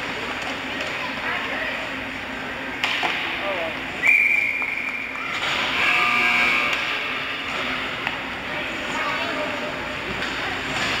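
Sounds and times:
voices over ice rink: 0:00.0 - 0:11.0
shrill whistle blast: 0:04.0 - 0:05.1.

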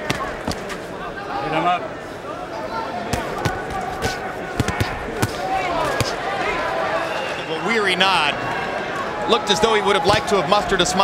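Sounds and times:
crowd voices calling out: 0:00.0 - 0:11.0
gloved punches thudding: 0:03.1 - 0:06.2.

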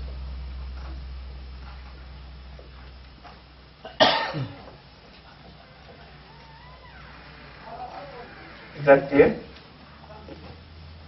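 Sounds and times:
loud cough: 0:03.8 - 0:04.7.

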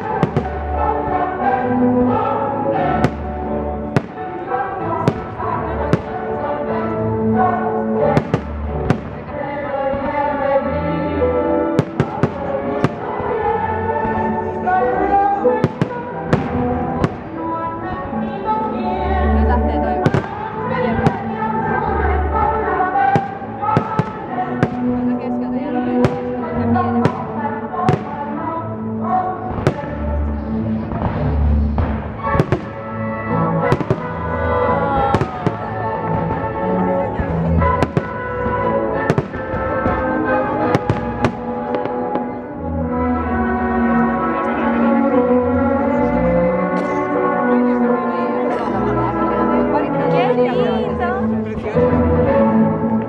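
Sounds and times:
loud music: 0:00.0 - 0:52.9.

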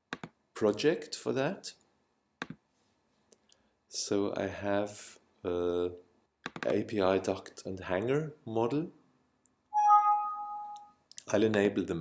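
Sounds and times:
two-tone bell-like alert chime: 0:09.8 - 0:10.9.

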